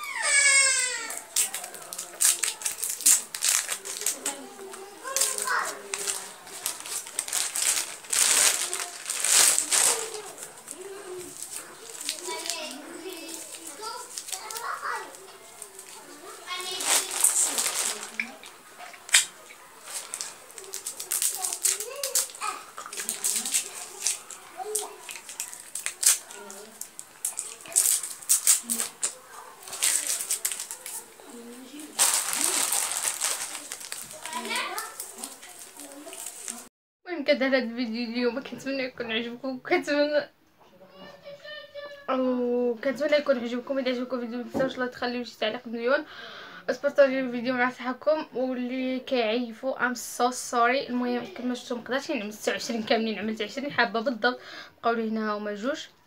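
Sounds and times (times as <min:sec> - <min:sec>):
gum wrappers crinkling: 0:00.4 - 0:36.7.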